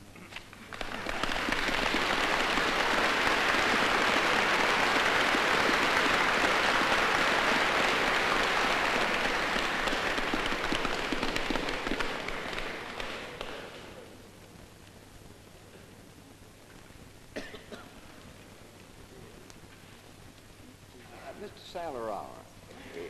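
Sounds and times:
audience applauding: 0.6 - 14.0.

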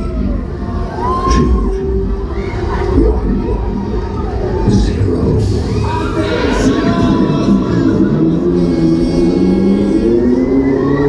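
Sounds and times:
fairground ride synth music: 0.0 - 11.0.

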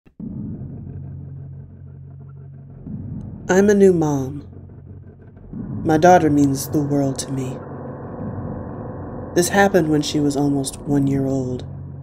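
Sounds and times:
low dark ambient drone: 0.1 - 12.0.

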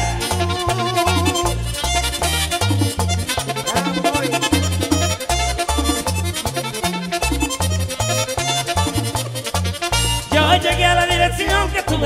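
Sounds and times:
accordion melody: 0.0 - 12.0
bouncing bass line: 0.0 - 12.0.

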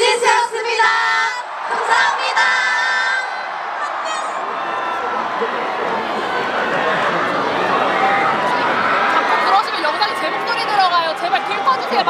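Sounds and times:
large crowd cheering and shouting: 0.0 - 12.0
nearby chatter: 3.8 - 12.0.

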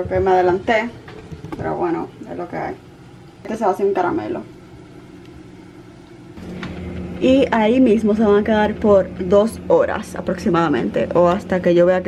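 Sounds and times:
refrigerator humming: 0.0 - 12.0.

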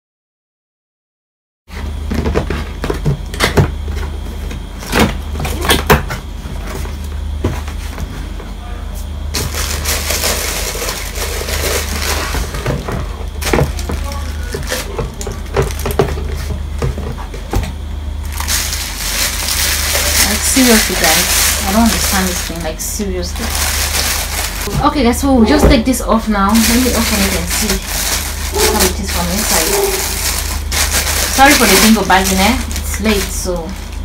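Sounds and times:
steady low hum: 1.7 - 34.0
cardboard and plastic crinkling: 9.3 - 17.6, 18.2 - 34.0.

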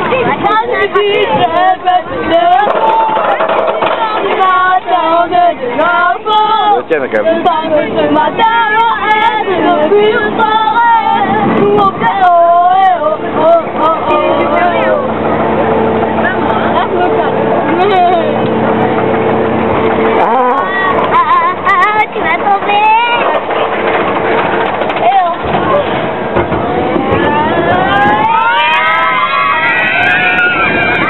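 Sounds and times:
roller coaster rumbling on track: 0.0 - 31.0
riders calling out: 20.0 - 21.0
rising multi-pitched whine: 25.4 - 31.0.

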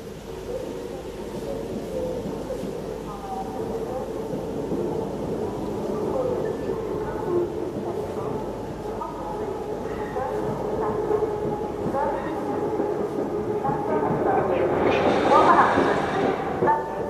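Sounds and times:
train running: 0.0 - 17.0
indistinct voices: 1.9 - 17.0.

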